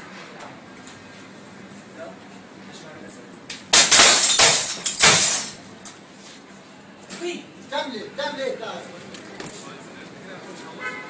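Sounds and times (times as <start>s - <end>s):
glass smashing: 3.7s - 5.8s.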